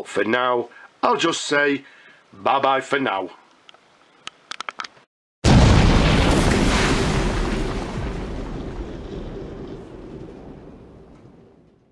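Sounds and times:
deep boom rumble: 0:05.4 - 0:11.9.

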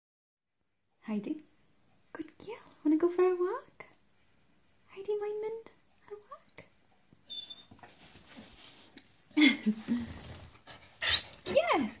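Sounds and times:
dog whining: 0:07.3 - 0:07.8, 0:11.0 - 0:11.6
dog panting: 0:10.3 - 0:11.5.

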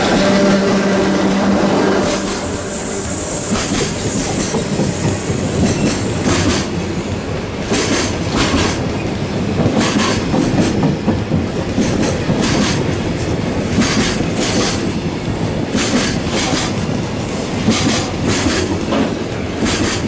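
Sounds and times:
freight train rumbling past: 0:00.0 - 0:20.0
wheels clacking on rail joints: 0:03.5 - 0:06.8, 0:07.6 - 0:17.0, 0:17.6 - 0:20.0.

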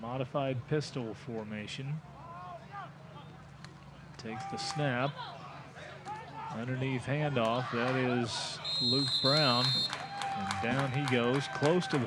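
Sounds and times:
open-air field ambience hum: 0:00.0 - 0:12.0.

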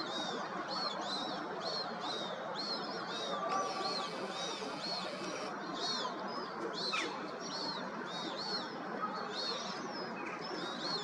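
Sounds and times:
birds calling: 0:03.4 - 0:05.5.

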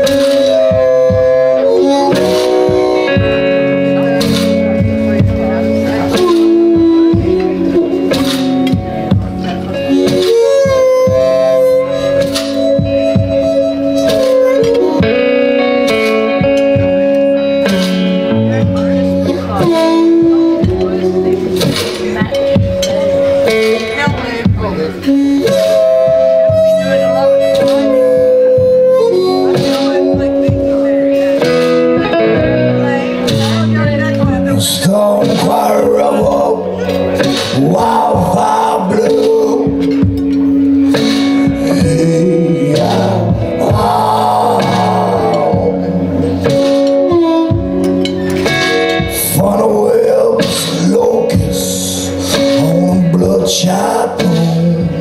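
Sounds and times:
electric guitar: 0:00.0 - 0:55.0
harmonica bending notes: 0:00.0 - 0:55.0
low thumping beat: 0:00.0 - 0:55.0.

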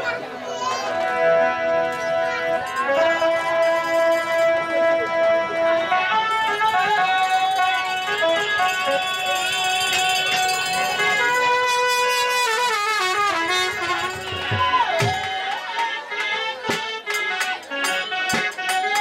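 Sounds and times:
slow melody with vibrato: 0:01.0 - 0:18.8.

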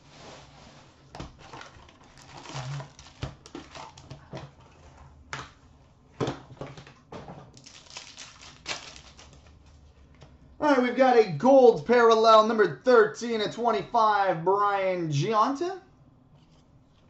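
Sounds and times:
cardboard and wrappers rustling: 0:00.0 - 0:05.0, 0:07.5 - 0:10.2
wrapper tearing: 0:01.4 - 0:04.1, 0:07.6 - 0:09.6.

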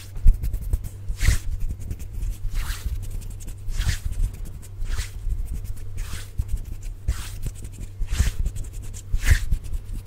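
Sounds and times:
hands swishing at microphone: 0:00.0 - 0:10.0
soft low thumps: 0:00.0 - 0:10.0.

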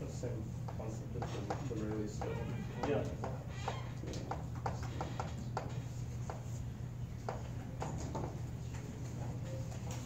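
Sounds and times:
low room hum: 0:00.0 - 0:10.0
chalk tapping on blackboard: 0:00.6 - 0:03.4, 0:04.1 - 0:06.6.

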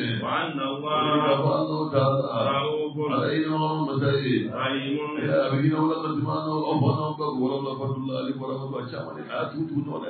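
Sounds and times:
man chanting religious recitation: 0:00.0 - 0:10.0.

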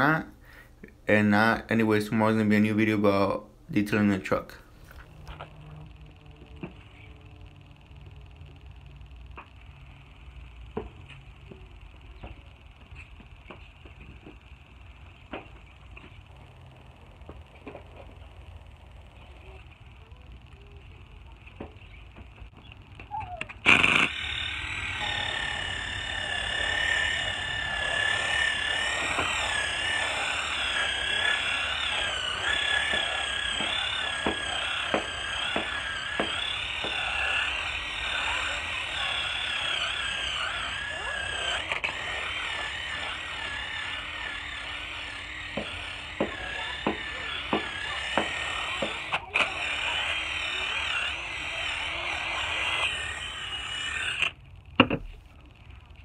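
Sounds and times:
cordless drill motor whining: 0:04.5 - 0:55.2.

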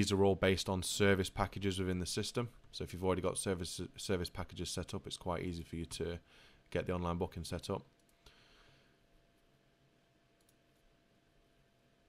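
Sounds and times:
faint computer mouse click: 0:10.4 - 0:10.8.

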